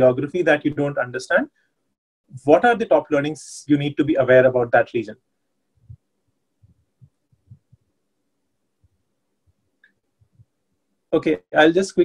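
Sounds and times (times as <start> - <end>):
faint low thumps: 5.8 - 7.9.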